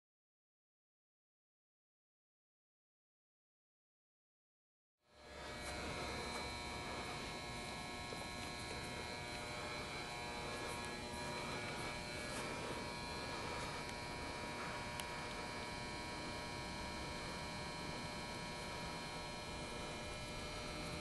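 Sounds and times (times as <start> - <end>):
machinery and lighting hum: 5.1 - 21.0.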